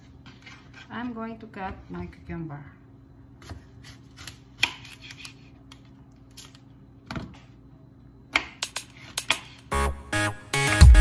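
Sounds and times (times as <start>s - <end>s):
knife chopping on cutting board: 3.4s - 5.4s
background music: 9.7s - 11.0s.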